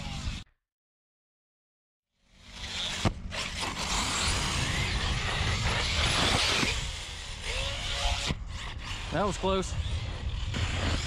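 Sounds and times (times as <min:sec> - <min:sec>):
electric motor and tyres on dirt: 0:00.0 - 0:00.4, 0:02.2 - 0:11.0.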